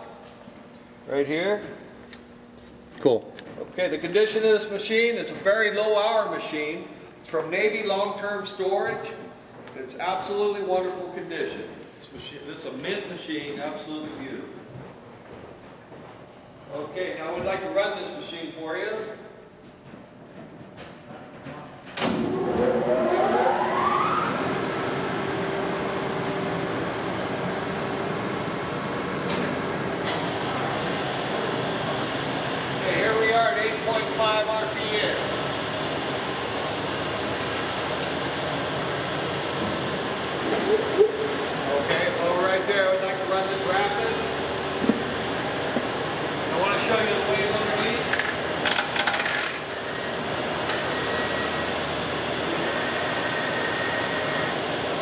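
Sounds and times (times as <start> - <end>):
lathe whining and humming: 22.0 - 55.0.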